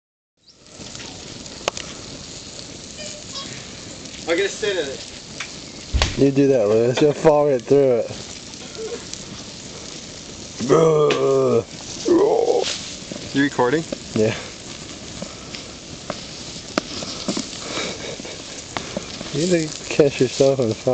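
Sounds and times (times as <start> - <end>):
fire hissing and crackling: 0.4 - 20.9.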